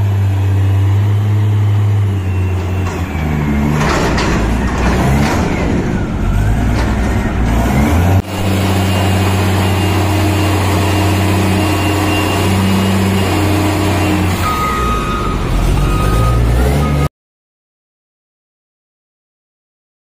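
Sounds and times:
diesel engine running: 0.0 - 17.1
steady high tone: 8.3 - 17.1.

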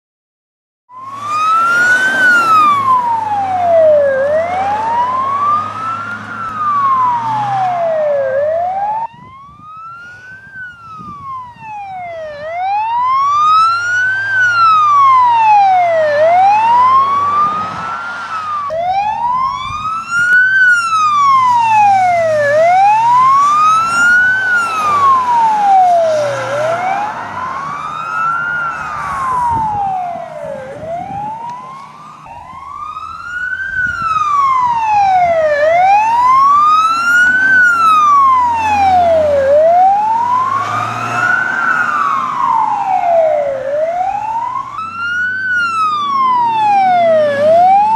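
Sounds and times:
wailing siren: 0.9 - 47.9.

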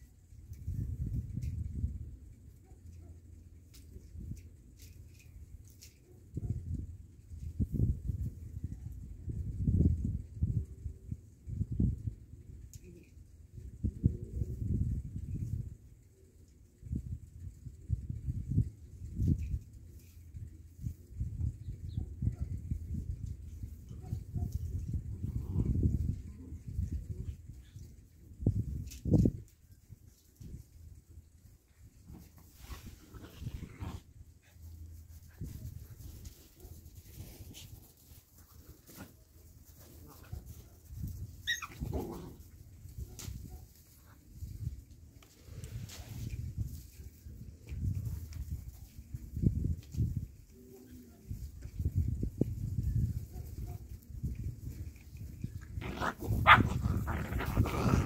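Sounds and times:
puppy yelping: 41.4 - 41.9, 55.8 - 58.0.

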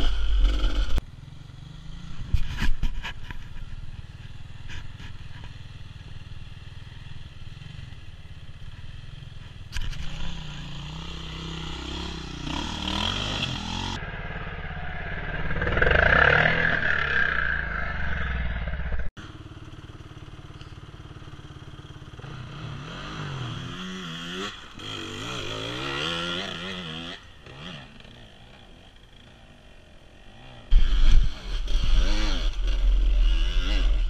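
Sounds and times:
dirt bike engines revving: 0.0 - 34.0.

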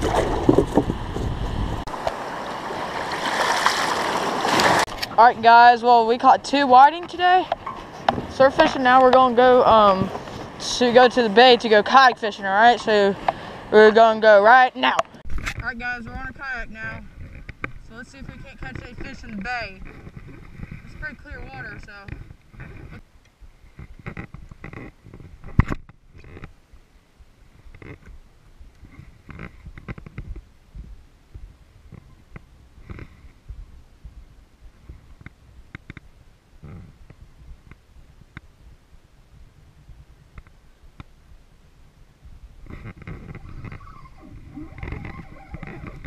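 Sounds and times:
wind and water rumble on microphone: 0.0 - 46.0.

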